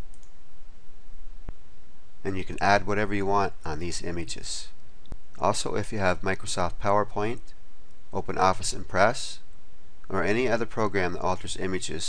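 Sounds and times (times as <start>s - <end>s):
computer mouse click: 0.0s - 0.4s
steady background hiss: 0.0s - 12.0s.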